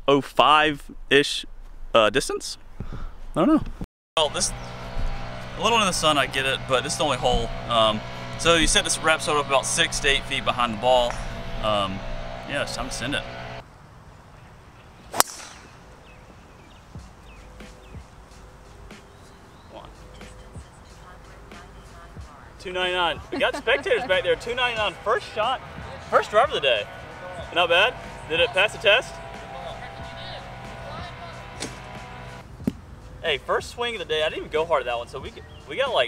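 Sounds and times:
background music with held tones: 4.2 - 13.6, 16.9 - 36.0
golf club striking ball: 11.0 - 12.4, 15.1 - 16.0, 30.4 - 32.8
golf club whoosh: 15.1 - 16.2, 31.4 - 32.8.

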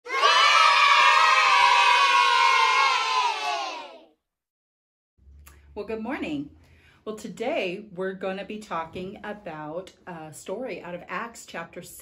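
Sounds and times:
children cheering and shouting: 0.0 - 4.1.

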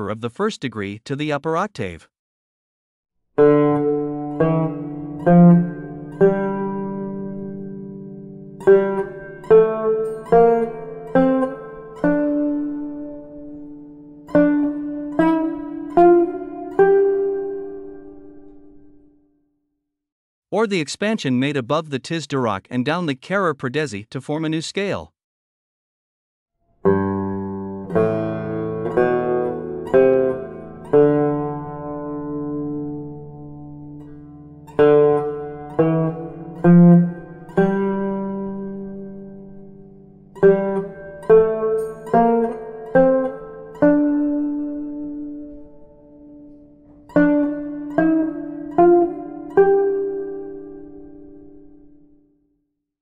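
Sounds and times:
plucked long-necked lute notes: 3.4 - 19.1, 26.8 - 52.2.

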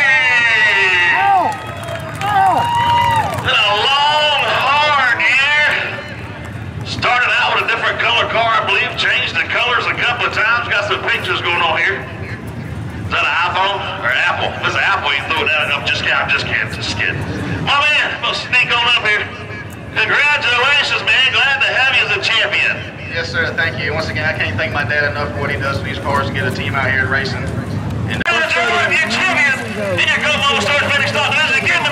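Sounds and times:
people talking: 0.0 - 1.5, 3.4 - 6.1, 6.8 - 12.4, 13.1 - 31.9
man talking: 3.4 - 6.1, 6.9 - 12.1, 13.1 - 31.9.

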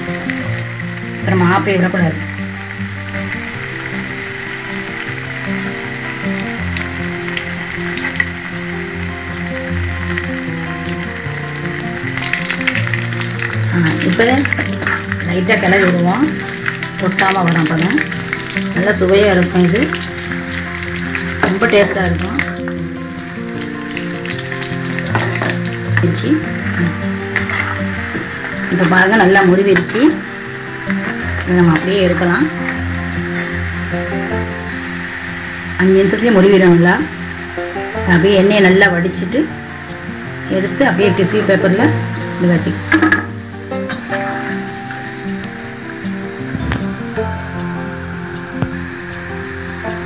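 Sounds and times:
background music with low notes: 0.0 - 50.0
battered food deep-frying in oil: 0.0 - 50.0
ladle stirring: 23.3 - 30.0.

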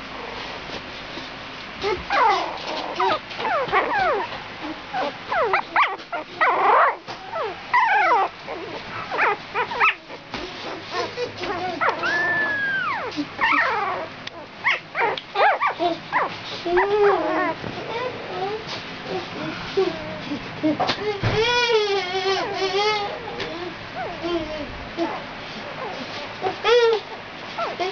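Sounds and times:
puppies whimpering and squeaking: 0.0 - 0.7, 1.8 - 27.9.

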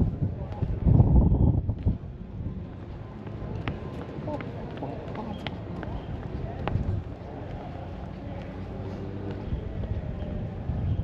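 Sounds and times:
wind buffeting microphone: 0.0 - 3.9, 5.7 - 7.8, 9.2 - 11.0.

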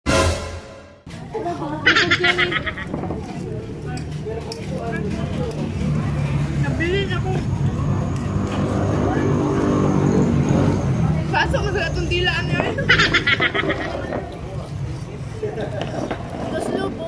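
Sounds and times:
vehicle engine rumbling: 0.2 - 17.0
people's voices: 1.1 - 17.0.

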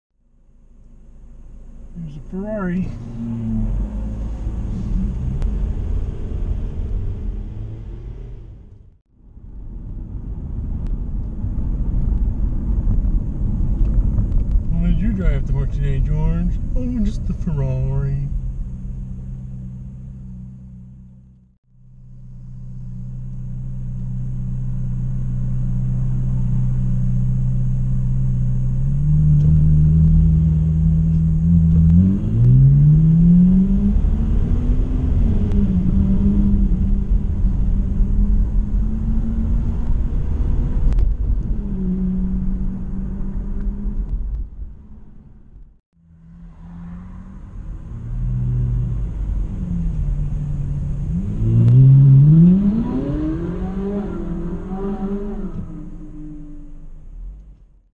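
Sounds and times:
car engine inside cabin: 0.2 - 57.9.

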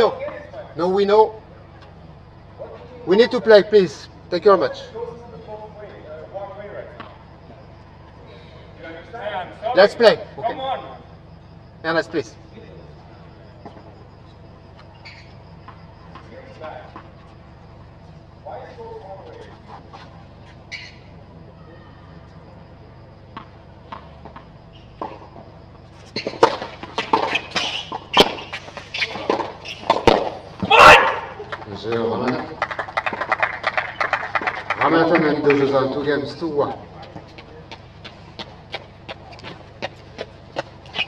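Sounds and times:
steady low hum: 0.0 - 41.0
faint voices: 18.4 - 24.2
small crowd applauding: 31.2 - 36.0.

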